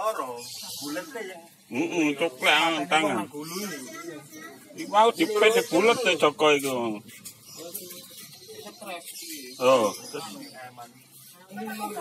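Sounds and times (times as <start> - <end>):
faint indistinct talk: 0.0 - 12.0.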